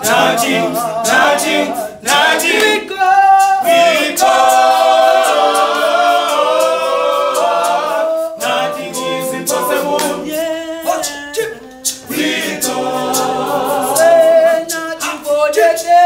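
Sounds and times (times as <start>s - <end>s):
men singing a cappella: 0.0s - 16.0s
sharp regular beat: 0.0s - 16.0s.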